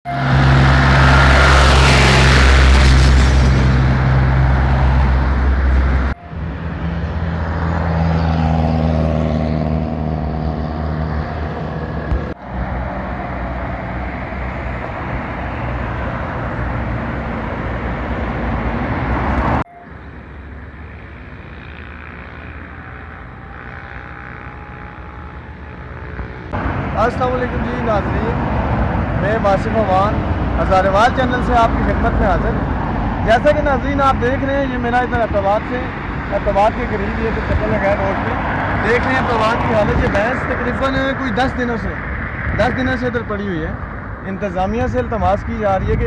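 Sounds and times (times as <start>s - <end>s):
highway traffic passing: 0.1s - 46.0s
faint engine hum: 19.7s - 28.4s.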